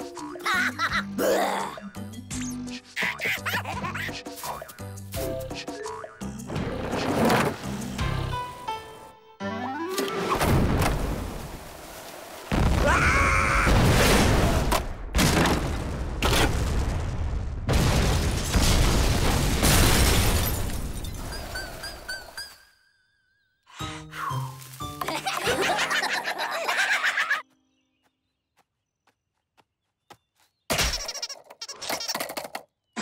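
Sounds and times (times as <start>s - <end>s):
cartoon music: 9.2s - 10.2s
cartoon explosion booms: 12.5s - 20.6s.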